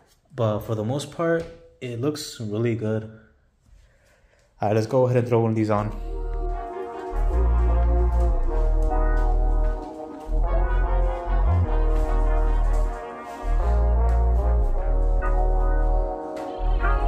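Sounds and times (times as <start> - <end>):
horn-like chords: 5.8 - 17.0
deep heavy bass notes: 5.9 - 17.0.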